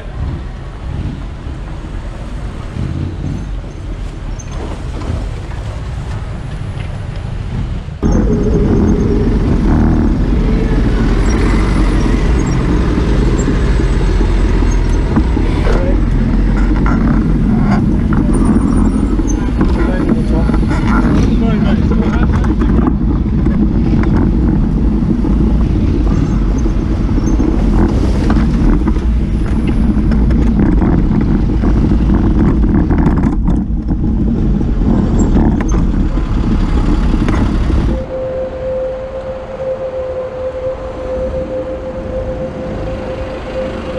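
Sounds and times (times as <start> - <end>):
road traffic: 0.0 - 43.9
wind rumble on microphone: 0.0 - 43.9.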